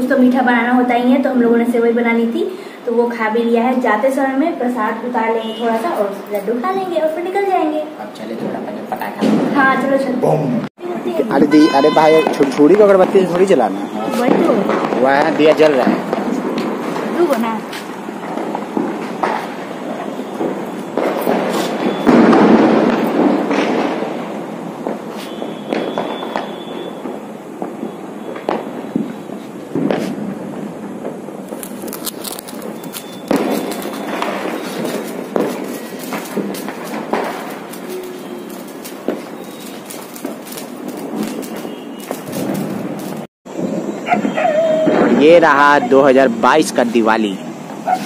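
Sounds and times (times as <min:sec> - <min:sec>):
firecrackers popping and crackling: 0:00.0 - 0:10.2, 0:10.8 - 0:48.0.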